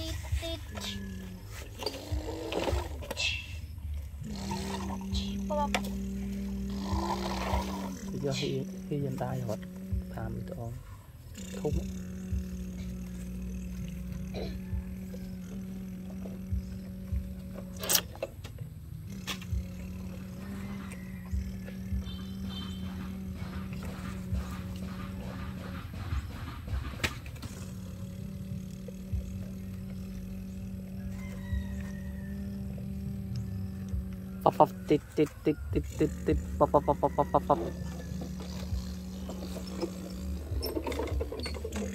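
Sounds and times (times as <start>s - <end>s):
child humming engine drone: 0.0s - 41.9s.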